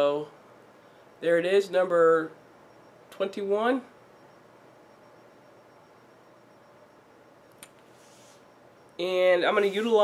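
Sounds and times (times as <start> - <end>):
faint hiss: 7.8 - 8.6.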